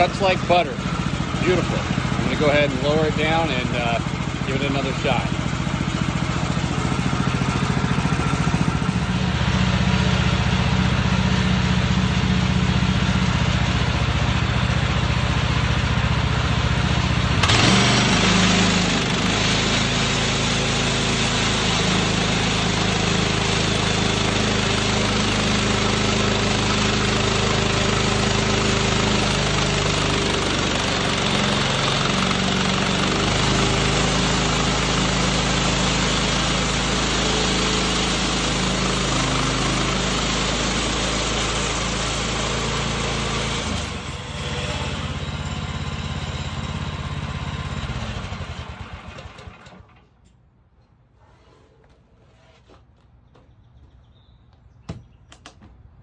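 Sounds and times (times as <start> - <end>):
saw blade cutting log: 0.0 - 5.4, 17.4 - 45.0
sawmill gas engine running: 0.0 - 50.0.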